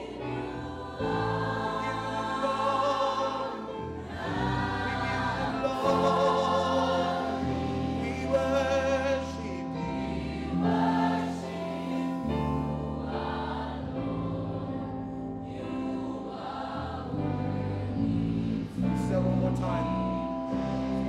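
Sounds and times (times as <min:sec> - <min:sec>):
congregation singing worship song: 0:00.0 - 0:21.0
low held chords: 0:00.0 - 0:21.0
man singing into microphone: 0:04.9 - 0:09.9.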